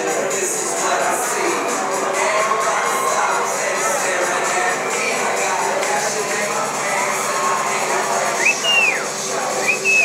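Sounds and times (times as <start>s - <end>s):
club noise: 0.0s - 10.0s
person wolf whistling: 8.4s - 9.0s, 9.6s - 10.0s.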